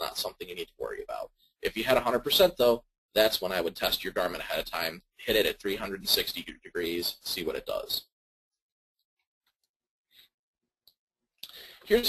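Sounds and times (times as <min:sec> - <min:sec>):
man speaking: 0:00.0 - 0:08.1, 0:11.4 - 0:12.0
intake of breath: 0:11.4 - 0:11.9.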